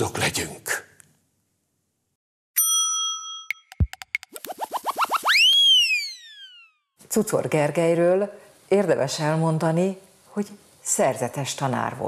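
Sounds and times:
bell-like chime: 2.6s - 4.0s
rising synthetic swoops: 4.2s - 6.7s.

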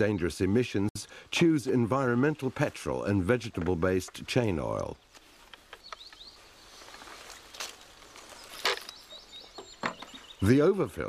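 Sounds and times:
faint bird chirps: 5.0s - 10.9s.

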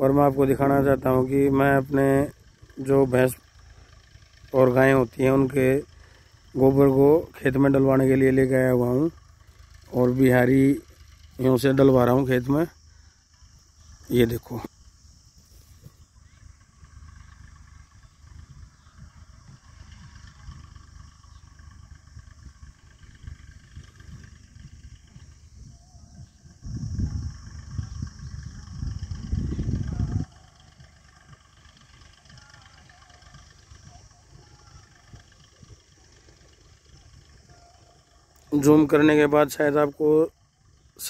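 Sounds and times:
distant tractor engine running: 0.0s - 41.0s
loud low rumble: 0.0s - 41.0s.

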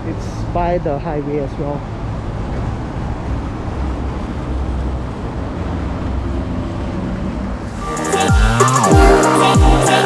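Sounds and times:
highway traffic rumble: 0.0s - 9.4s.

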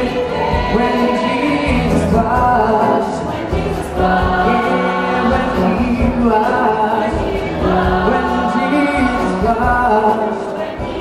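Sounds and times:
choir singing gospel song: 0.0s - 11.0s.

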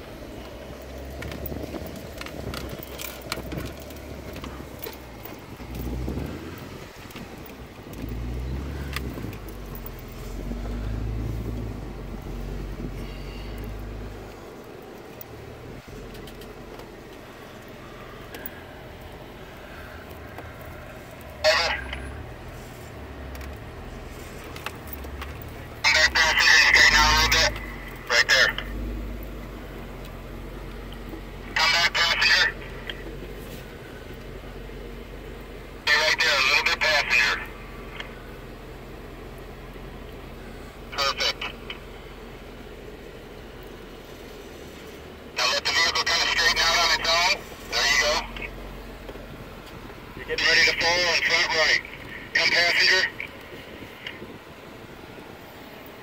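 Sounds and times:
car engine humming at low speed: 0.0s - 56.0s
indistinct voices: 1.2s - 33.8s, 35.8s - 38.4s, 40.3s - 42.2s, 44.8s - 54.4s.

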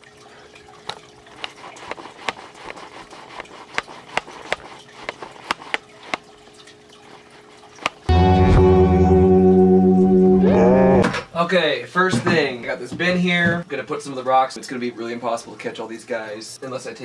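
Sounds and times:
water drips and splashes: 0.0s - 8.1s
aquarium filter water trickling: 0.0s - 9.8s, 11.2s - 17.0s.

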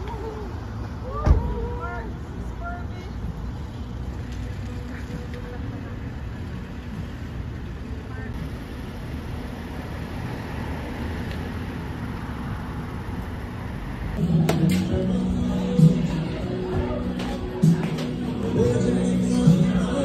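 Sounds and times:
road traffic rumble: 0.0s - 20.0s
loud music from inside: 14.2s - 20.0s.

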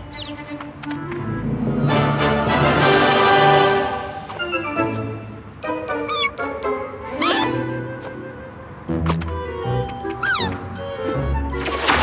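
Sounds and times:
cartoon soundtrack music: 1.0s - 12.0s.

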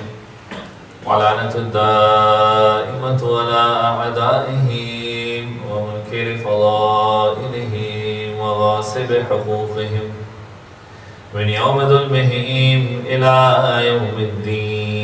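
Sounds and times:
man chanting a recitation: 1.0s - 10.4s, 11.3s - 15.0s.

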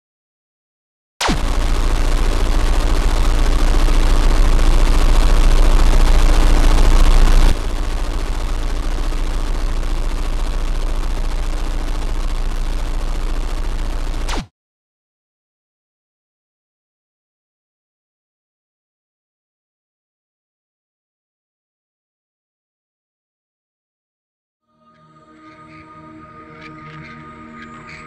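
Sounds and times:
television static hiss: 1.2s - 14.4s
rapid crackling: 1.2s - 14.5s
steady hum: 1.2s - 14.5s.

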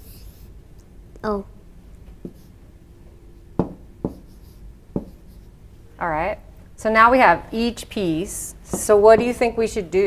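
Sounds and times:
stylus tapping on glass: 3.6s - 4.2s.

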